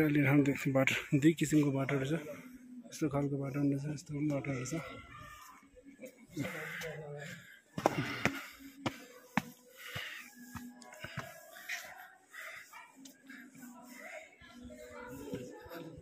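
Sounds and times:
people's voices in background: 0.0s - 16.0s
footsteps on stone steps: 7.8s - 11.8s.

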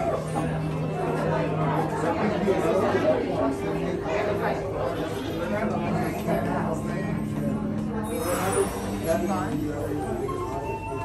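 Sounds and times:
faint music: 0.0s - 11.0s
people chattering: 0.0s - 11.0s.

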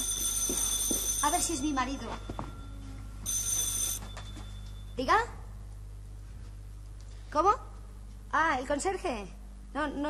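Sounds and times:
desk telephone ringing: 0.0s - 4.9s.

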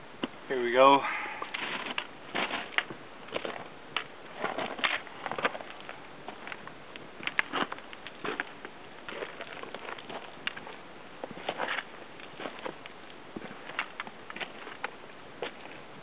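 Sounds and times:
boots crunching on loose rock: 1.3s - 15.8s.

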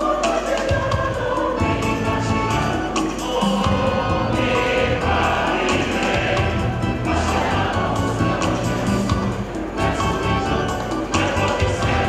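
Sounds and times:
band with bass: 0.0s - 12.0s
choir singing gospel music: 0.0s - 12.0s
percussion strikes: 0.0s - 12.0s.

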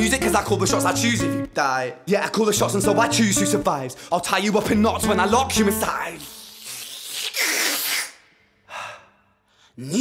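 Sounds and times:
man's breathy exhalation: 8.6s - 9.8s.

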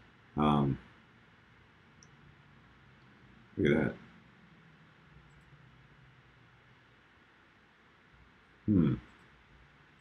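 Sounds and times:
computer mouse clicks: 5.2s - 5.6s.

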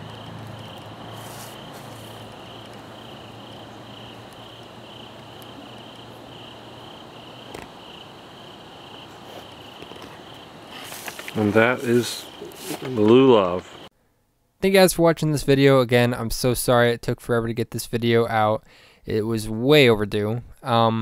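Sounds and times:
cricket chirping: 0.0s - 13.9s.

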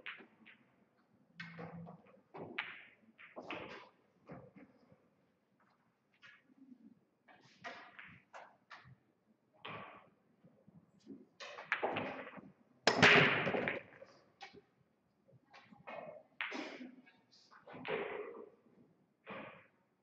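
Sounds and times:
pool balls clattering: 1.4s - 4.9s, 11.4s - 14.6s.

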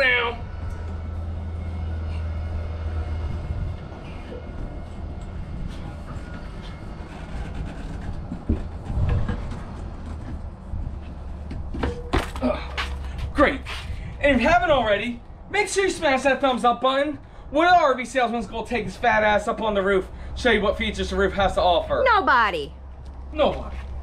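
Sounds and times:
steady low rumble: 0.0s - 11.7s.

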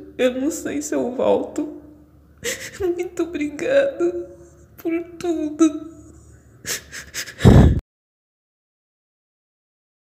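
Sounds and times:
woman sniffling gasps: 2.4s - 2.8s, 6.6s - 7.8s.

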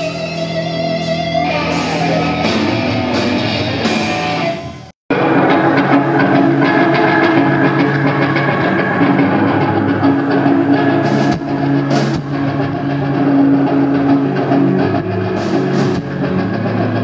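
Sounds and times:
distorted electric guitar: 0.0s - 17.0s
drum kit: 0.0s - 17.0s.

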